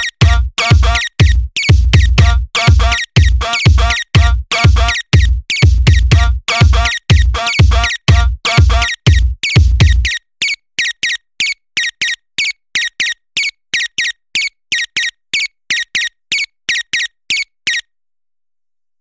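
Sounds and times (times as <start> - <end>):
heavy bass kick drum: 0.0 - 10.0
high squeaky electronic sound: 0.0 - 11.2.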